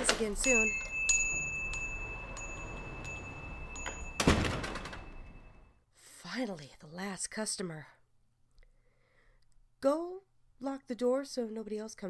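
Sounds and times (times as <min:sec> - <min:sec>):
door shutting: 0:00.0 - 0:05.6
shop door bell chime: 0:00.2 - 0:05.8.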